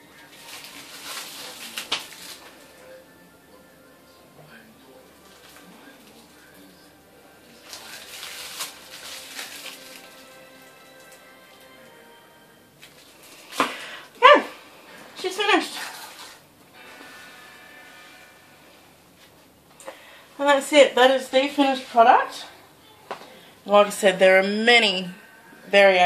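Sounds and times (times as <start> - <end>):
rustling: 0.0 - 3.0, 7.4 - 11.3, 15.7 - 17.2
faint background music: 0.0 - 26.0.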